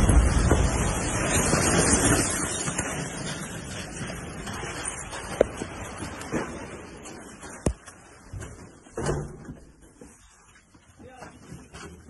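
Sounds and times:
loud rush of noise: 0.0 - 4.0.

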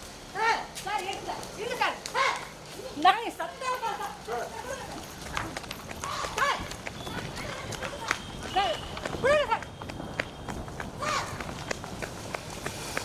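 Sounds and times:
quick footsteps on pavement: 0.0 - 13.0
women shouting high calls: 2.1 - 2.6, 3.6 - 9.7, 11.0 - 11.4.

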